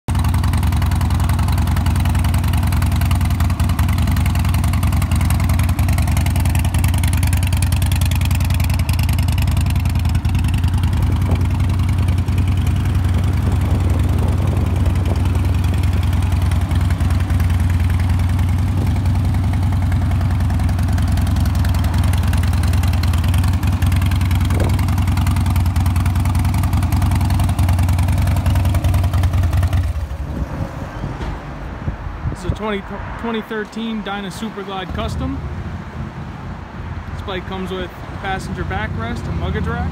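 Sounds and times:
motorcycle engine idling: 0.1s - 30.3s.

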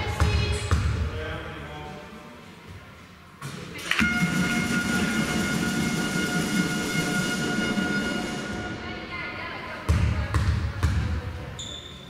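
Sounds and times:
low rumble of hall noise: 0.0s - 11.6s
loud horn blast: 4.0s - 9.2s.

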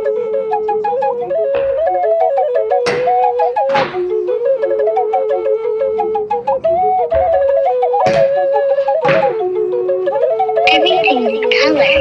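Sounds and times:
music with flute-like melody: 0.0s - 12.0s
fingerboard knocking on wood: 7.0s - 8.4s.

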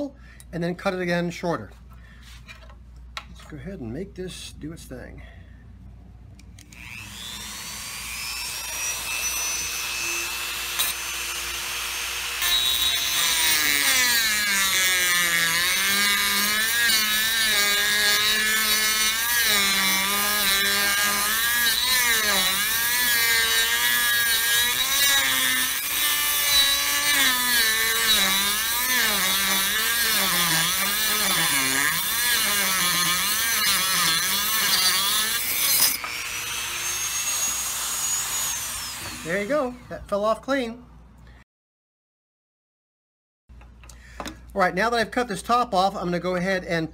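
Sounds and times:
rotary tool whining: 6.6s - 39.6s
rotary tool grinding glass: 6.7s - 39.5s.

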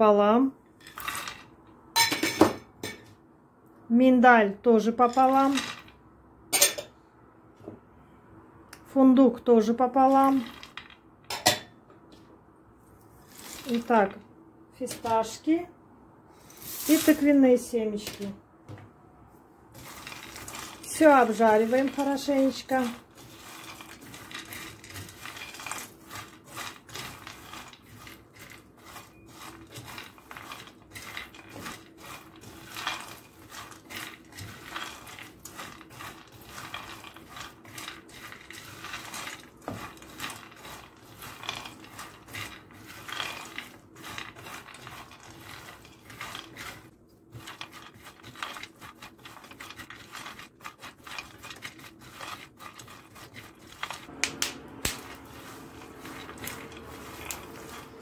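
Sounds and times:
spatula scraping nuts in pan: 13.2s - 14.2s, 16.4s - 17.3s, 19.7s - 58.0s.

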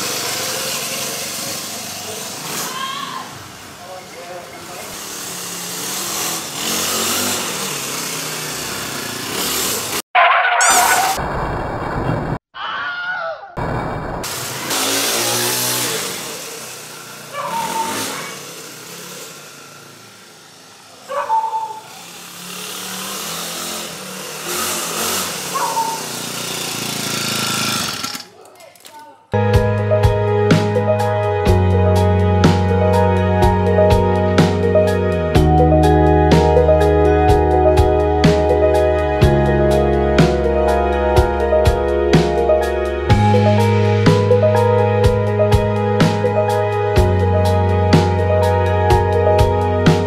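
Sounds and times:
small petrol scooter engine: 0.0s - 10.0s, 14.3s - 28.4s
music: 29.4s - 50.0s.

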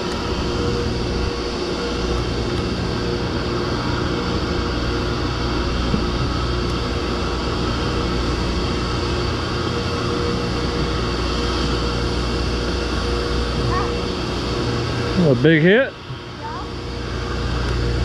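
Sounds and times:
constant rushing noise: 0.0s - 18.0s
machinery hum with held tones: 0.0s - 18.0s.

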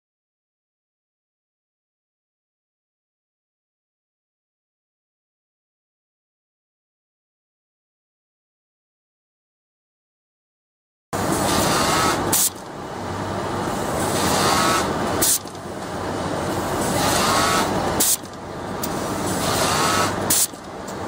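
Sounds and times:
sewing machine running: 11.2s - 12.7s, 13.4s - 15.6s, 16.2s - 18.3s, 19.1s - 20.6s
factory machinery din: 11.2s - 21.0s
short pneumatic hiss: 11.5s - 12.6s, 14.2s - 15.5s, 16.8s - 18.3s, 18.9s - 20.6s.

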